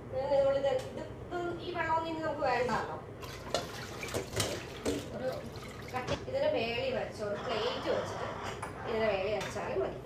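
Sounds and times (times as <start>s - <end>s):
woman speaking: 0.1s - 3.1s, 5.1s - 10.0s.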